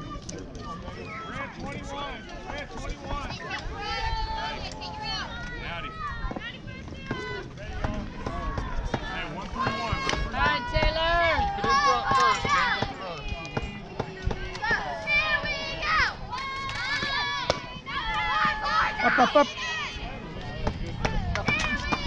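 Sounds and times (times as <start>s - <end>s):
voices shouting and cheering: 0.0s - 22.0s.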